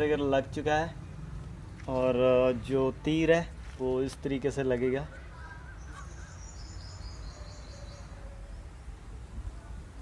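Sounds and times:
bird chirping: 5.1 - 8.9.

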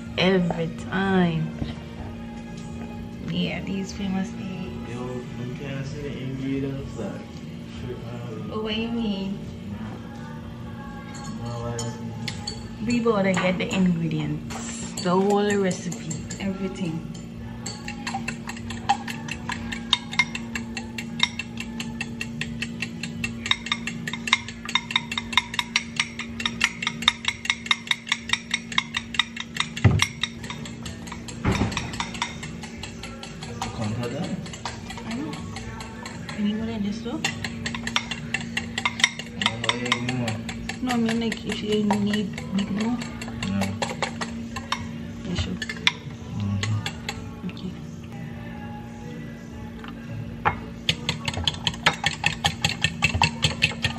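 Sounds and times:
background music: 0.0 - 53.9
fork clinking against glass bowl: 11.1 - 13.8, 14.6 - 47.4, 50.4 - 53.9.

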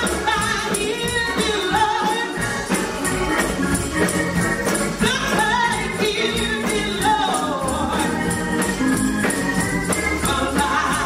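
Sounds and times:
gospel singing: 0.0 - 11.0
steady percussion beat: 0.0 - 11.0.

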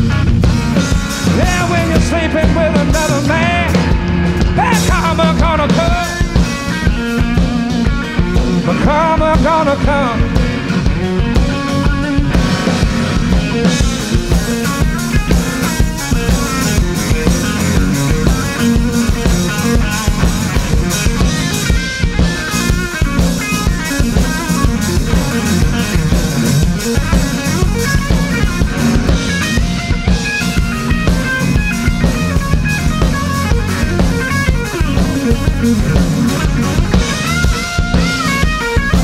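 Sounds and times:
drum kit: 0.0 - 39.0
electric bass: 0.0 - 39.0
electric guitar: 0.0 - 39.0.

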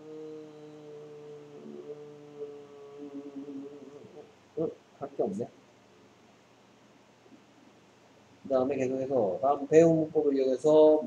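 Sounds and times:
man humming: 0.0 - 5.5
short vocal sound: 0.0 - 5.5.

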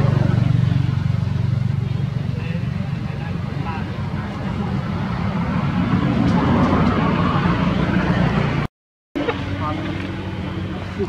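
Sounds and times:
distant engine hum: 0.0 - 11.0.

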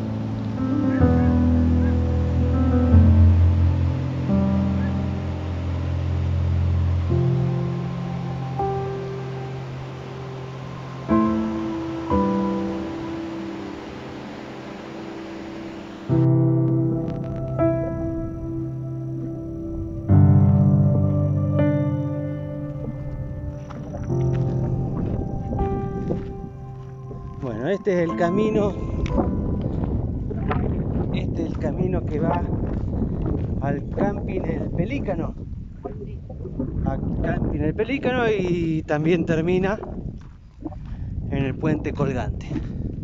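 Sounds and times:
slow piano chords: 0.0 - 34.5
wind buffeting microphone: 0.0 - 43.0
footsteps on loose stones: 22.6 - 27.6, 29.2 - 34.3, 39.8 - 41.1.

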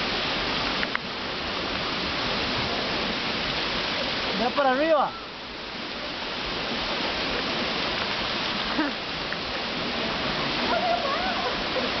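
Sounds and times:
waterfall rushing: 0.0 - 12.0.

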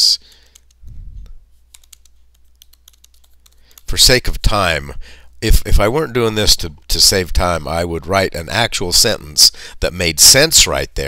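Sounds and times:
person speaking: 0.0 - 11.0
computer keyboard typing: 0.2 - 0.8, 1.7 - 3.9.

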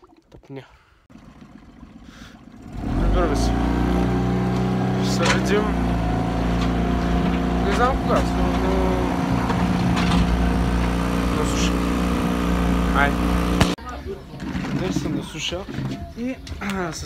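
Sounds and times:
boat motor running: 1.1 - 13.8.

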